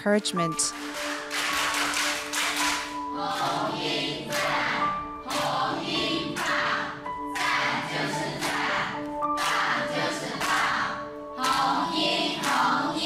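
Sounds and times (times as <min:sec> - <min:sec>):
people clapping in rhythm: 0:00.5 - 0:13.0
group singing a cheer: 0:02.9 - 0:13.0.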